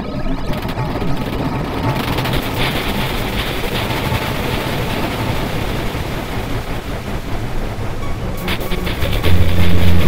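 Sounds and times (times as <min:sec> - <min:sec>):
harsh noise music: 0:08.4 - 0:10.0.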